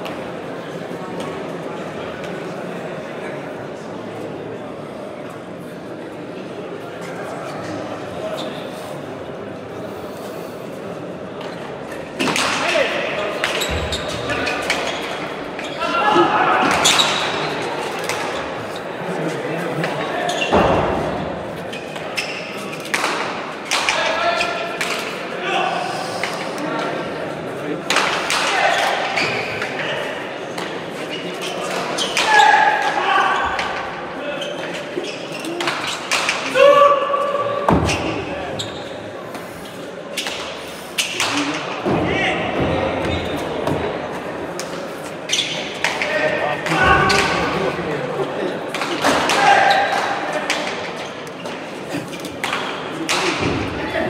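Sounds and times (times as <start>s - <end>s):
spectators talking and calling out: 0.0s - 54.0s.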